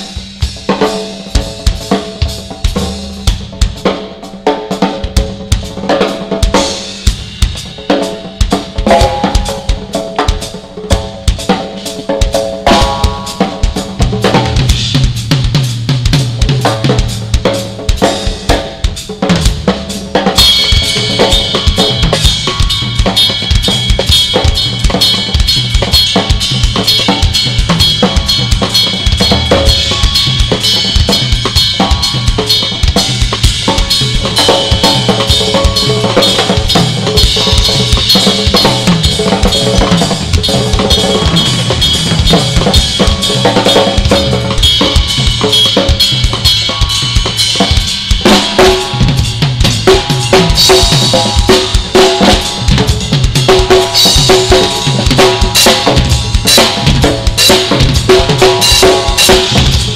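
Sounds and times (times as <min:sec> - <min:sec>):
drum kits playing: 0:00.0 - 0:59.9
cymbals ringing: 0:16.5 - 0:59.9.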